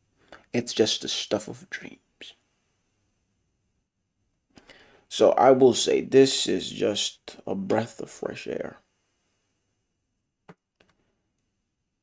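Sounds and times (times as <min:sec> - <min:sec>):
faint breathy sound: 0:04.5 - 0:05.1.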